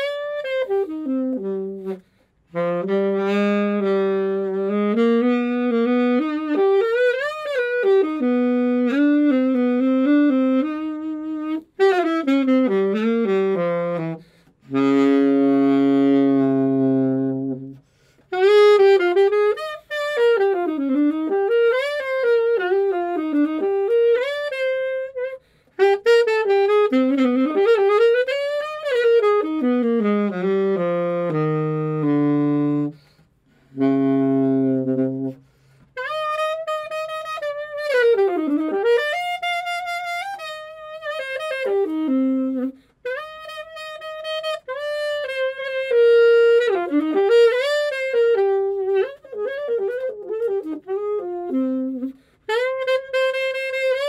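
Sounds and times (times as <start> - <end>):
alto saxophone playing jazz: 0.0 - 54.0.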